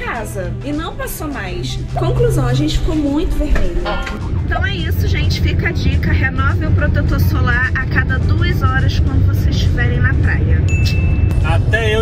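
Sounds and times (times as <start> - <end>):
woman speaking: 0.0 - 11.0
car road rumble: 0.6 - 12.0.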